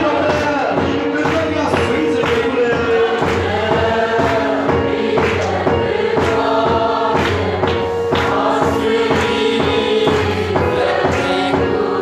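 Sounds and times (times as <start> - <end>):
choir singing gospel song: 0.0 - 12.0
instrumental accompaniment: 0.0 - 12.0.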